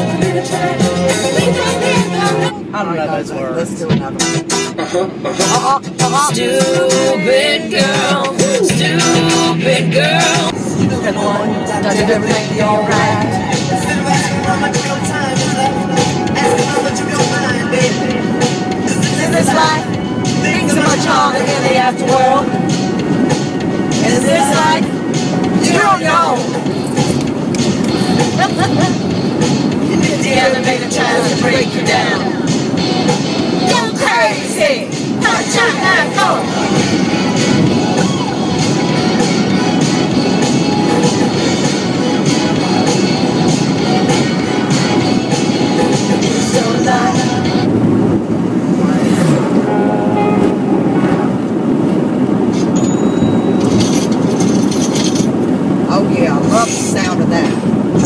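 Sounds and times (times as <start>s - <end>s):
music on car stereo: 0.0s - 58.0s
road noise: 0.0s - 58.0s
voice: 1.4s - 4.3s, 5.0s - 9.1s, 10.8s - 18.0s, 23.9s - 24.9s, 25.6s - 26.6s, 55.9s - 57.6s
people laughing: 28.1s - 29.1s.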